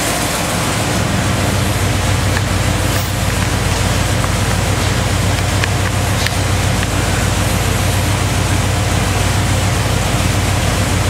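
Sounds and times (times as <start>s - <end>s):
vee eight engine running steadily: 0.0s - 11.0s.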